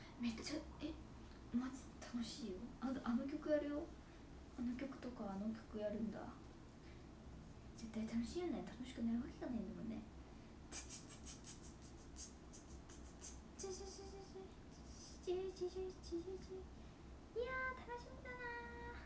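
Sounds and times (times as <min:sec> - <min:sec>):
woman speaking: 0:00.0 - 0:03.9, 0:04.5 - 0:06.4, 0:07.8 - 0:10.1, 0:17.4 - 0:19.0
woman humming: 0:12.1 - 0:16.7.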